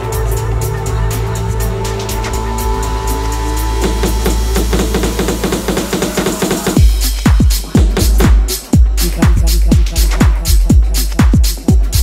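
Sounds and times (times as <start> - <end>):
tech house music: 0.0 - 12.0.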